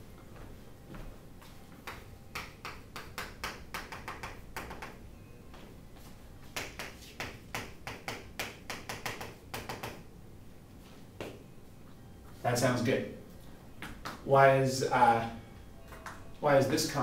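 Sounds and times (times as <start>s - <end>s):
chalk tapping and scraping on chalkboard: 6.4s - 10.0s.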